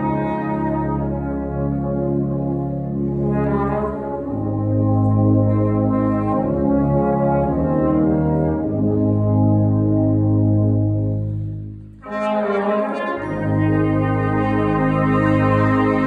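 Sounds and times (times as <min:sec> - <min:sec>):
wind band sustained chords: 0:00.0 - 0:16.0.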